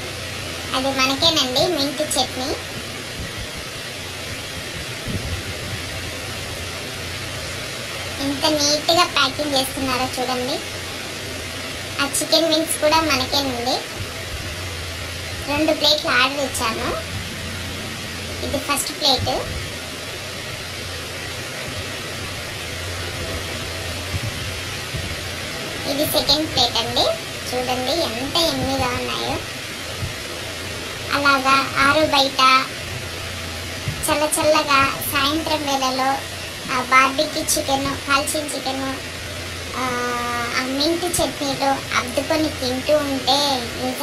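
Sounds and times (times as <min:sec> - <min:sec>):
low mechanical hum: 0:00.0 - 0:44.0
steady background hiss: 0:00.0 - 0:44.0.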